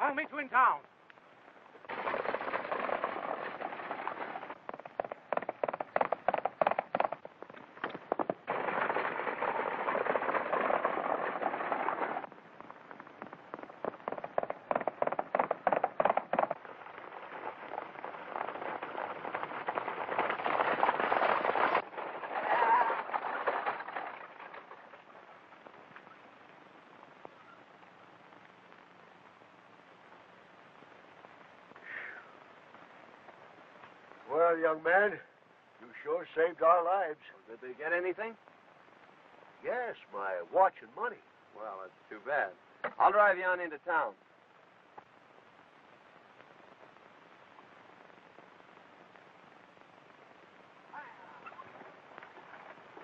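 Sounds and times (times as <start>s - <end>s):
galloping horses: 0.0s - 53.0s.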